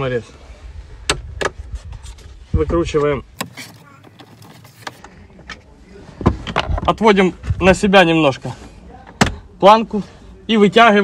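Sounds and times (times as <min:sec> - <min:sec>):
screwdriver unscrewing from plastic: 0:03.4 - 0:05.0.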